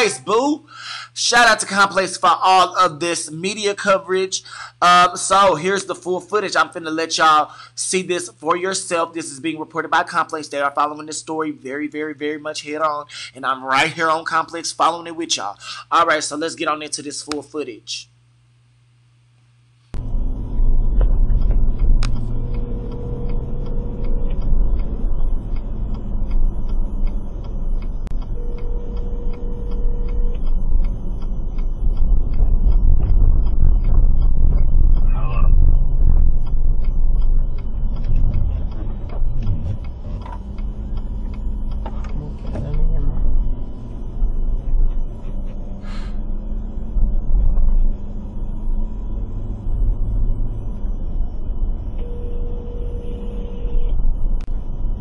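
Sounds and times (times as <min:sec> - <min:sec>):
turn signal ticking: 0:20.0 - 0:45.8
car engine rumble: 0:20.0 - 0:55.0
phone ringing: 0:26.9 - 0:30.8, 0:51.8 - 0:54.2
road noise: 0:35.9 - 0:52.0.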